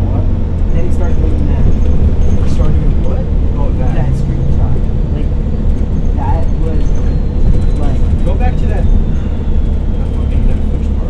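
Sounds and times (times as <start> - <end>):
people talking: 0.0 - 5.4, 6.0 - 11.0
bus engine and road rumble: 0.0 - 11.0.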